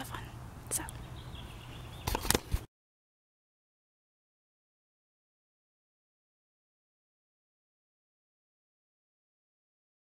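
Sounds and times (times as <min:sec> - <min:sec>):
camera handling knocks and rubs: 0:02.0 - 0:02.7.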